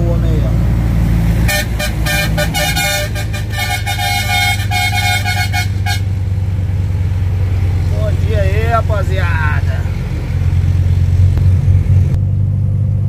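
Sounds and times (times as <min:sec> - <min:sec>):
truck engine drone: 0:00.0 - 0:13.0
truck horn short toots: 0:01.5 - 0:06.2.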